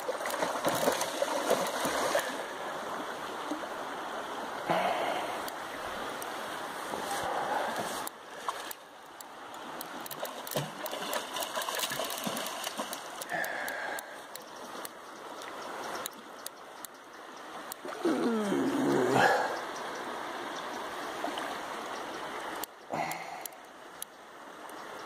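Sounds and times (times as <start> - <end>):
river water rushing: 0.0 - 25.0.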